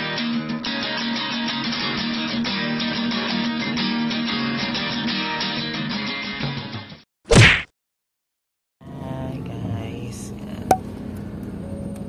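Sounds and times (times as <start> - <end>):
acoustic guitar music: 0.0 - 6.2
whoosh and whack sound effect: 7.3 - 7.7.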